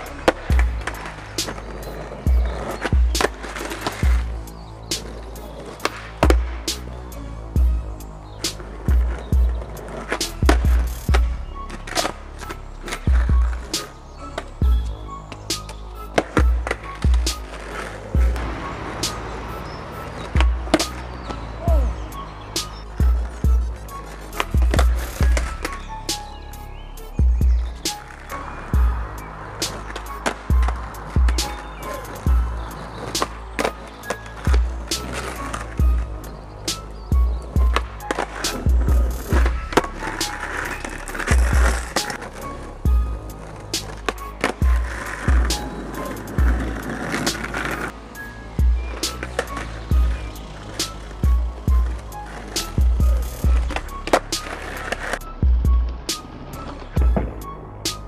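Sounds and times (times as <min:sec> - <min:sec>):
skateboard pops and clacks: 0:00.0 - 0:02.0, 0:02.6 - 0:04.3, 0:04.9 - 0:06.9, 0:08.4 - 0:14.5, 0:15.3 - 0:21.8, 0:22.5 - 0:25.8, 0:29.2 - 0:42.5, 0:43.4 - 0:47.9, 0:49.0 - 0:50.1, 0:50.7 - 0:55.2, 0:56.1 - 0:58.0
music with bass beat: 0:00.0 - 0:33.6, 0:34.3 - 0:47.9, 0:48.5 - 0:58.0
skateboard wheels rolling on asphalt: 0:00.0 - 0:58.0.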